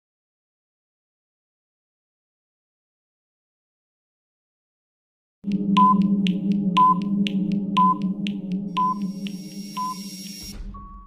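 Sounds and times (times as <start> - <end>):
timer ticking: 5.4 - 10.8
low drone: 5.5 - 10.6
short beeps: 7.8 - 11.0.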